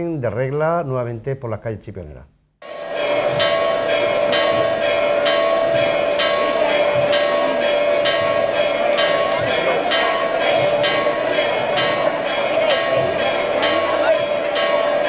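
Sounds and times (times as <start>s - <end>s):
church bells pealing: 2.6s - 15.0s.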